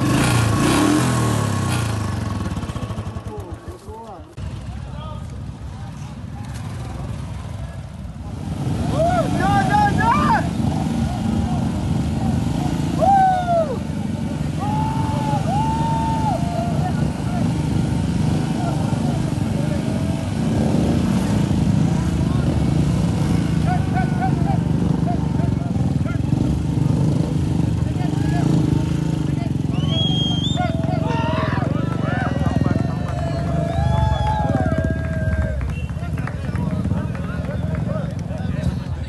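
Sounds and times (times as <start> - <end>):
motorcycle engines running: 0.0 - 39.0
spectators shouting: 8.8 - 20.6, 29.7 - 35.8.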